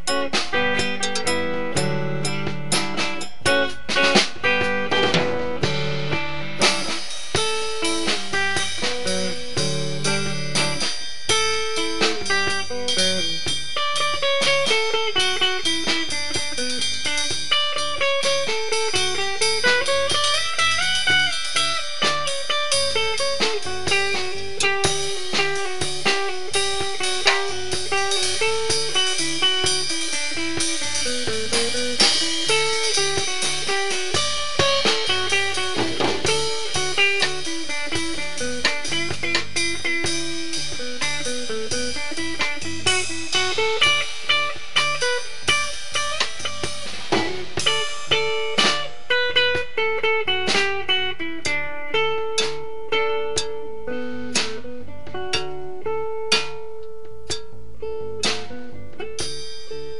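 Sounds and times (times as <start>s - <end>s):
blues-rock band playing: 0.0s - 59.9s
electric guitar lead line: 0.0s - 59.9s.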